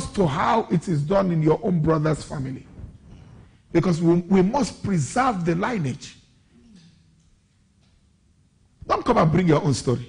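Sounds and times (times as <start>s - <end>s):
man speaking: 0.0s - 2.7s, 3.7s - 6.2s, 8.8s - 10.0s.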